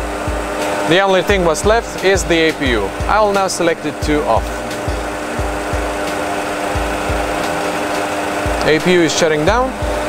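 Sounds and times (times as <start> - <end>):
cockpit engine hum: 0.0 - 10.0
deep low thumps: 1.3 - 3.3, 4.0 - 6.1.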